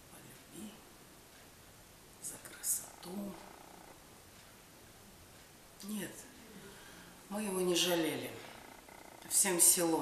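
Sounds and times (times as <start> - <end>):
woman breathing sharply: 6.6 - 7.2.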